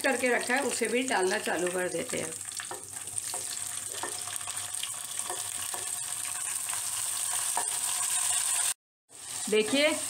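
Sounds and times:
hot oil sizzling: 0:00.0 - 0:10.0.

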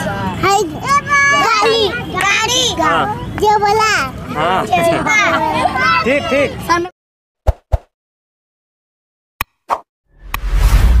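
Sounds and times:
whoosh of noise: 0:10.2 - 0:11.0.

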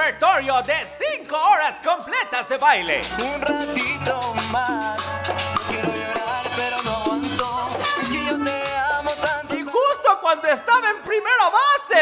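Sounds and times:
live salsa band playing: 0:00.0 - 0:11.5
steady bass line: 0:02.8 - 0:09.7
hand percussion: 0:02.9 - 0:10.0.

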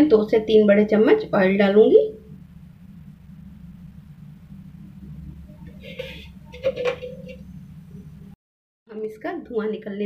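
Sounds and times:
steady low hum: 0:00.0 - 0:08.4.

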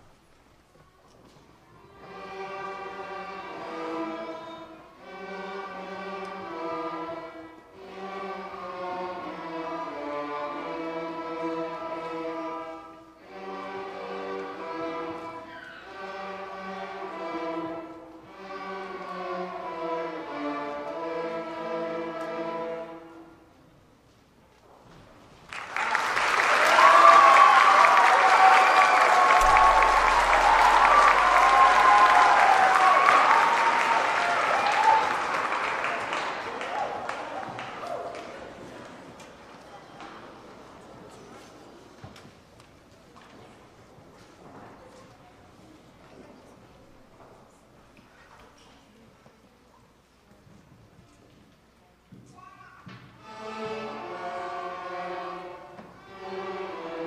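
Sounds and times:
string orchestra playing: 0:01.8 - 0:23.5, 0:26.8 - 0:37.4, 0:53.2 - 0:57.0
audience applause: 0:25.5 - 0:38.9.

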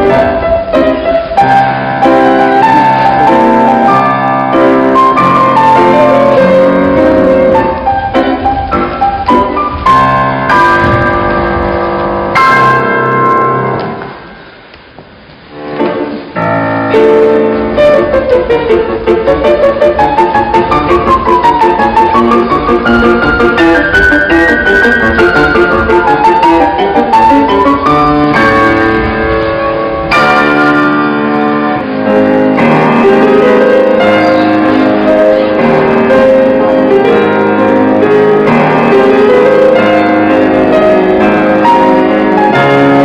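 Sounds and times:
piano chords ringing: 0:00.0 - 0:43.0.

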